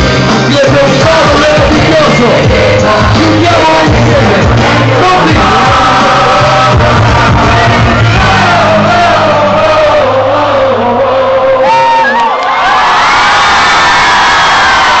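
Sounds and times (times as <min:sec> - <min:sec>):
loud live hip-hop music: 0:00.0 - 0:12.2
crowd singing and shouting: 0:00.0 - 0:12.8.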